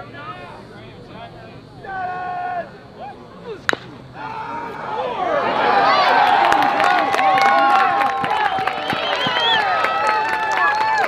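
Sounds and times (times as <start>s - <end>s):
spectators calling out: 0.5s - 10.8s
baseball bat hitting ball: 3.6s - 4.4s.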